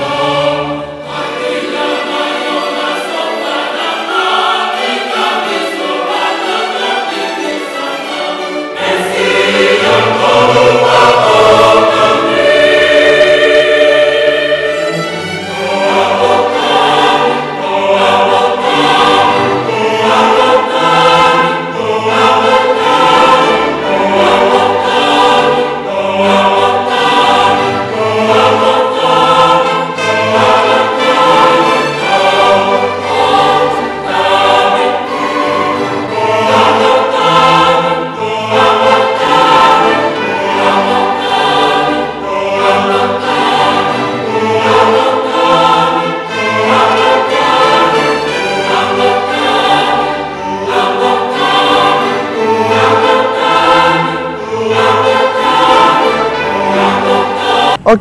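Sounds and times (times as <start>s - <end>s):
choir singing: 0.0s - 58.0s
string orchestra: 0.0s - 58.0s.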